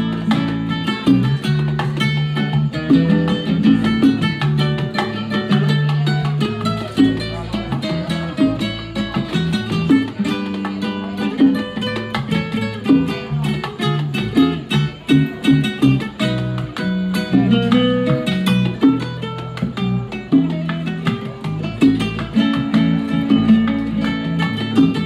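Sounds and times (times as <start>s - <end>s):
electric bass line: 0.0s - 10.2s, 12.2s - 25.0s
acoustic guitar melody: 0.0s - 25.0s
bongos: 0.0s - 25.0s.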